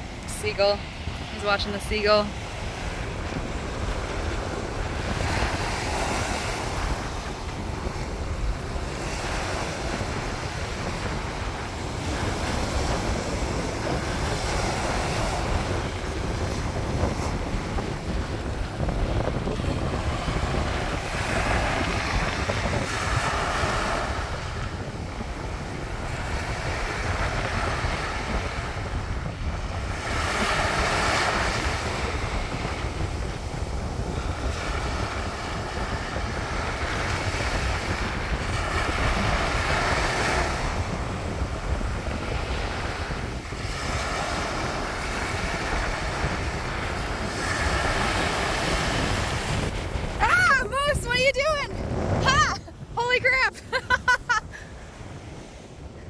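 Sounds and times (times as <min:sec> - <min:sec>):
ocean surf breaking on beach: 0:00.0 - 0:56.0
wind on microphone: 0:00.0 - 0:56.0.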